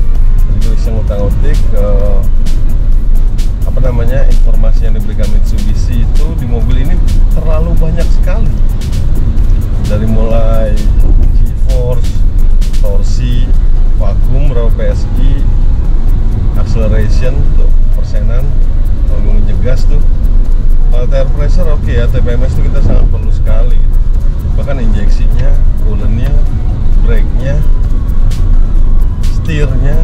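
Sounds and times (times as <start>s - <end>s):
car road and engine noise: 0.0s - 30.0s
music: 0.0s - 30.0s
man talking: 0.5s - 2.3s, 3.6s - 8.6s, 9.8s - 15.6s, 16.5s - 20.1s, 20.9s - 27.7s, 29.2s - 30.0s.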